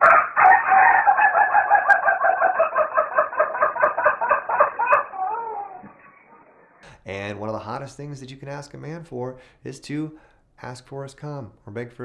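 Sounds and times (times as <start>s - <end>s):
rooster crowing: 0.0s - 6.8s.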